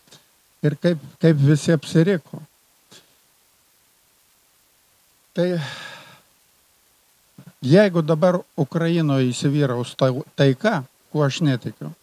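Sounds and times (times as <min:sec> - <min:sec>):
man sighing: 0:05.4 - 0:06.3.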